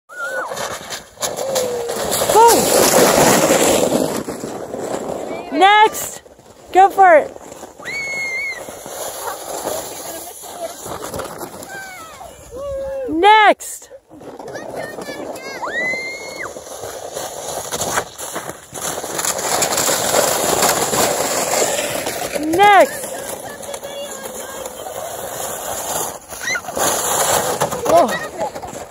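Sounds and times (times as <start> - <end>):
people whooping and shouting: 0.1 - 0.5, 7.8 - 8.6, 11.7 - 13.1, 15.6 - 16.5
sled splashing into slush: 0.1 - 12.5, 14.2 - 28.9
child yelling: 14.8 - 16.2.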